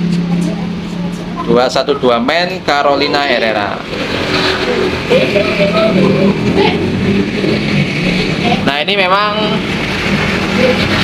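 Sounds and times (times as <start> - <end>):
vehicle engine running loudly: 0.0 - 11.0.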